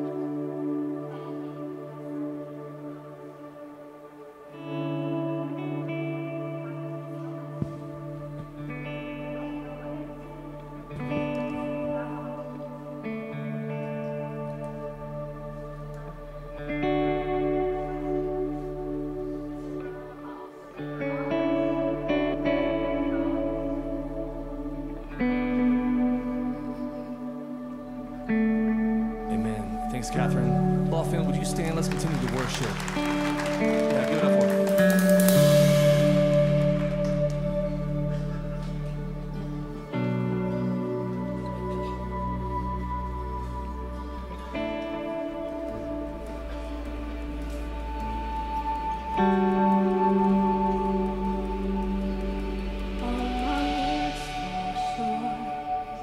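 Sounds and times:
electric guitar chords with echo: 0.0s - 56.0s
band playing: 29.2s - 56.0s.

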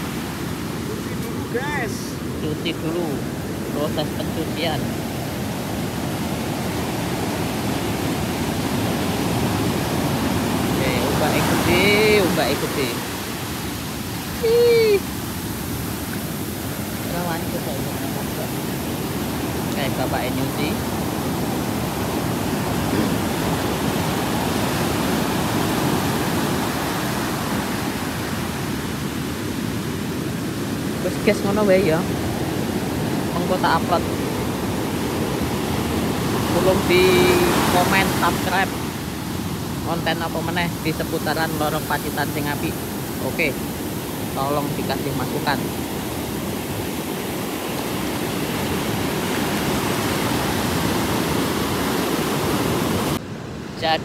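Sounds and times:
waves breaking on shore: 0.0s - 54.0s.

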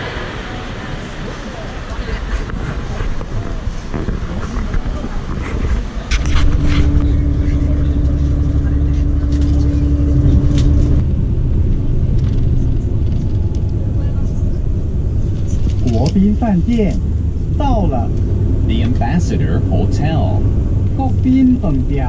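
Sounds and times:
bus engine rumble inside cabin: 0.0s - 22.0s
crowd voices outdoors: 0.0s - 22.0s
steady hum: 0.0s - 22.0s.

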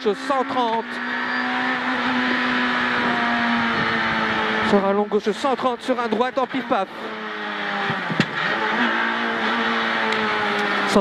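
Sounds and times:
car engine at high revs: 0.0s - 11.0s.

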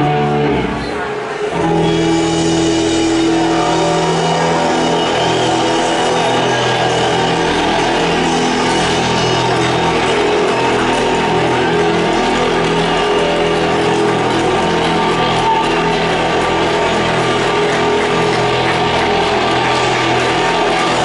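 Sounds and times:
rock band playing: 0.0s - 0.8s, 1.4s - 21.0s
electric guitar: 0.0s - 21.0s.

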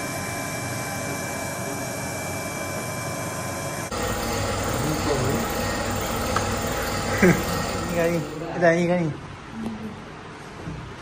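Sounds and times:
faint high whining tones: 0.0s - 8.7s
machine hiss and hum: 0.0s - 8.9s.

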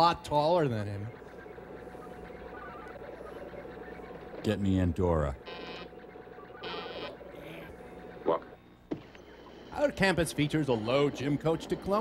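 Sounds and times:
steady low hum: 0.0s - 12.0s
telephone line buzzing tones: 0.0s - 12.0s.

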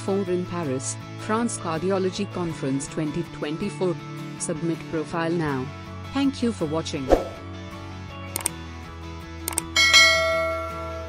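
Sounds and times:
soft background music: 0.0s - 11.0s
mouse clicks: 8.4s - 8.6s.

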